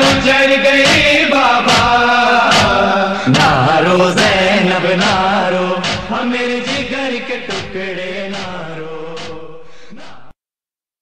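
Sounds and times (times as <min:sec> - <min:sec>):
man chanting a lament: 0:00.0 - 0:10.3.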